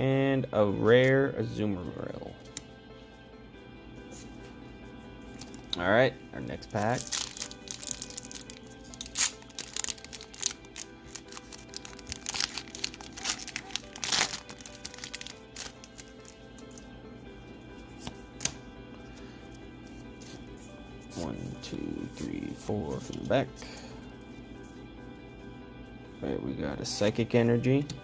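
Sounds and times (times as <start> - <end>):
background music: 0.0 - 28.0
foil pack tearing and crackling: 6.8 - 16.4.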